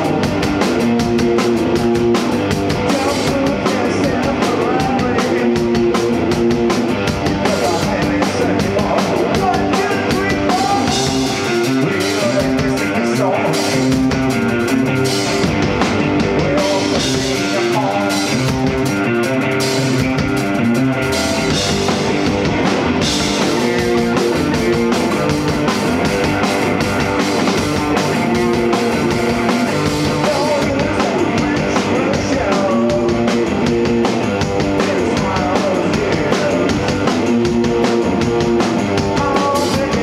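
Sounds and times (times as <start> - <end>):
rock band playing: 0.0 - 40.0.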